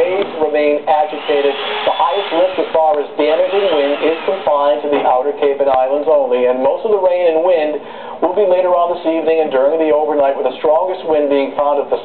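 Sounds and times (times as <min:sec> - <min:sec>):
man speaking through tv speaker: 0:00.0 - 0:12.0.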